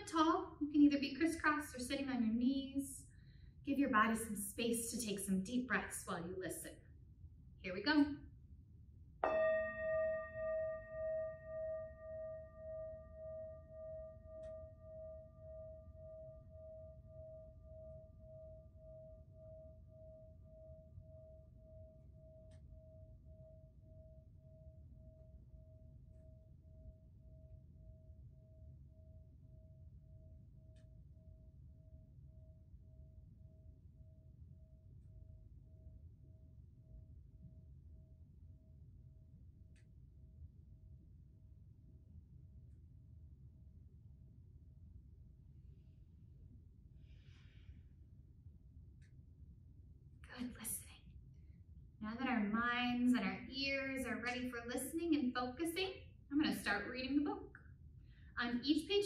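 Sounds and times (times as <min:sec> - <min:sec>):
metal singing bowl ringing: 0:09.2 - 0:31.1.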